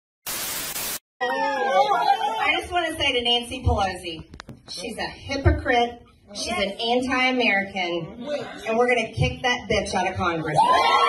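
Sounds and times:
tv static hiss: 0.3 - 1.0.

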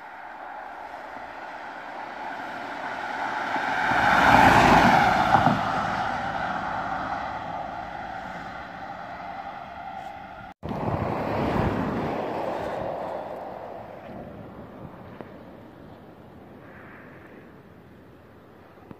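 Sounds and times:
car driving past at speed: 0.5 - 14.4.

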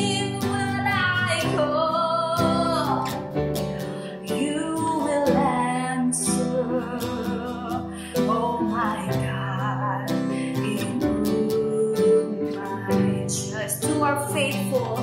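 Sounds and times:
woman singing: 0.0 - 3.3, 3.9 - 15.0
strummed acoustic guitar: 0.0 - 15.0.

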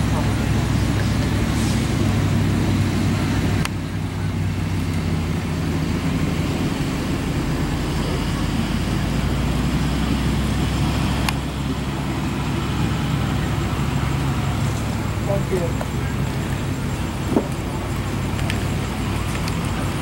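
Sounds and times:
engine idling drone: 0.0 - 20.0.

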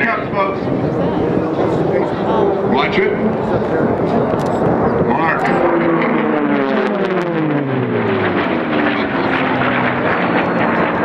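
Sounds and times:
propeller planes passing low: 0.0 - 11.0.

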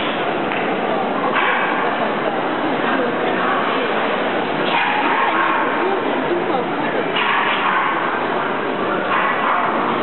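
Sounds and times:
crowd chatter: 0.0 - 10.0
dogs barking and yipping: 4.7 - 5.9, 7.2 - 8.4, 9.0 - 10.0.

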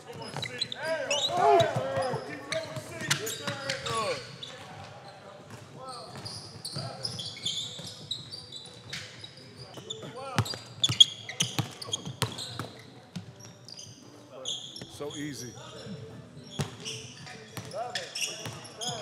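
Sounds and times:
sneakers squeaking: 0.0 - 19.0
players calling out: 0.4 - 4.2.

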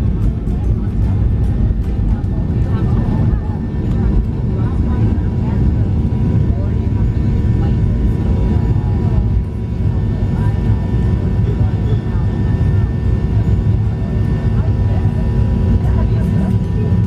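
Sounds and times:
jet engines roaring in cabin: 0.0 - 17.0.

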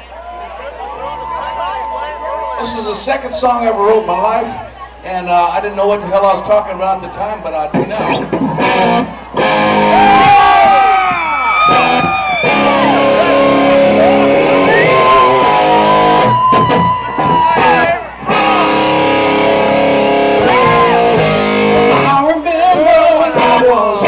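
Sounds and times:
electric guitar bent notes: 7.7 - 10.4, 11.6 - 22.2.

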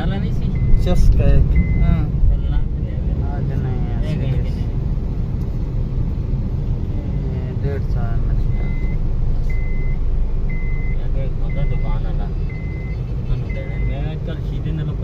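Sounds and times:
engine and road rumble: 0.0 - 15.0
short electronic beeps: 0.4 - 2.1, 8.4 - 14.0.

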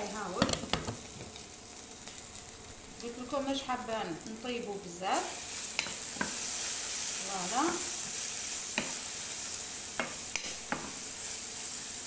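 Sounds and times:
peppers sizzling in a frying pan: 0.0 - 12.0.

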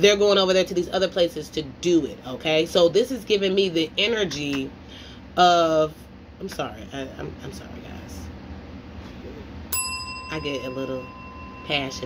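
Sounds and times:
bell ding ringing: 9.7 - 12.0.

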